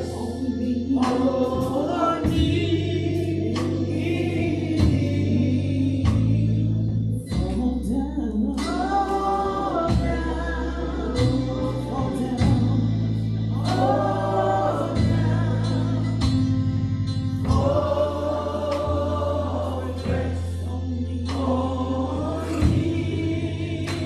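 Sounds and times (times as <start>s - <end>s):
electric keyboard: 0.0s - 24.0s
gospel singing: 0.0s - 24.0s
drum and cymbal hits: 1.0s - 2.8s, 11.1s - 24.0s.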